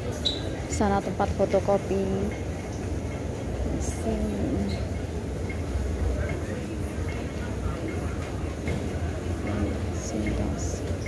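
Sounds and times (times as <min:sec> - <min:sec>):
low rumble in indoor hall: 0:00.0 - 0:11.0.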